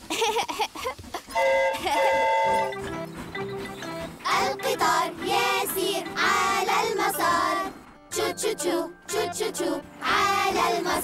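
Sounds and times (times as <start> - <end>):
cartoon steam train whistle: 1.3 - 2.9
light children's music: 1.4 - 11.0.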